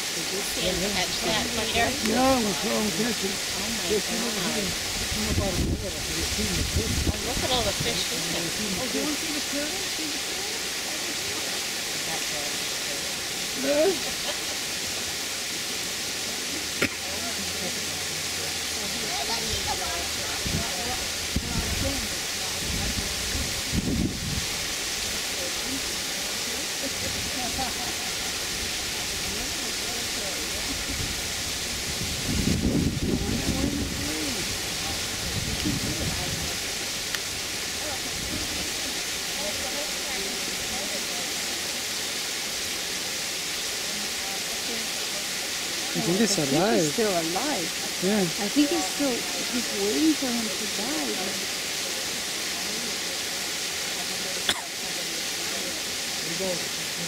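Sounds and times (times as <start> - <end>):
low voices: 0.0 - 57.0
steady outdoor hiss: 0.0 - 57.0.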